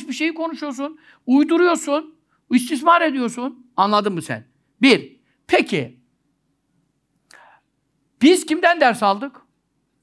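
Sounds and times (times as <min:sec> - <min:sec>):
faint breath: 0:07.3 - 0:07.8.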